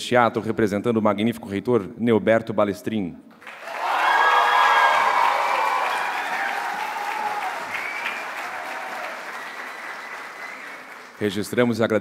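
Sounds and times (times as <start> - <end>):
audience applauding: 3.4 - 11.6.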